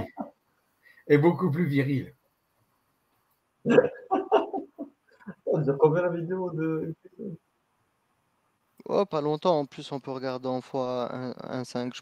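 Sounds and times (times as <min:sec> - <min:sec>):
man laughing: 0:03.7 - 0:05.8.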